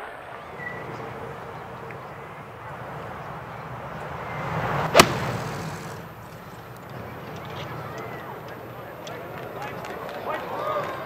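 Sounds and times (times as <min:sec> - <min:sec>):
outdoor background noise: 0:00.0 - 0:11.0
golf swing rushing through air: 0:02.8 - 0:06.4
golf club striking ball: 0:04.8 - 0:06.1.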